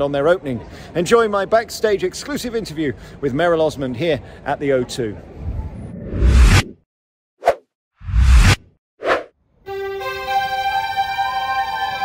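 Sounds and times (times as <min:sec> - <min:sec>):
whoosh: 0:05.4 - 0:06.8, 0:07.4 - 0:09.3.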